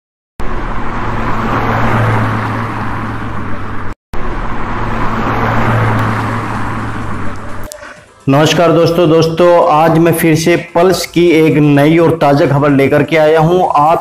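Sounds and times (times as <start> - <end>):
loud rushing noise: 0.4 - 11.8.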